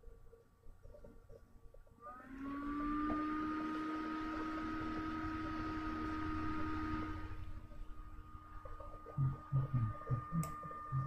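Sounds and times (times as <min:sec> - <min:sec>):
machine whirring with a whine: 0:00.0 - 0:11.0.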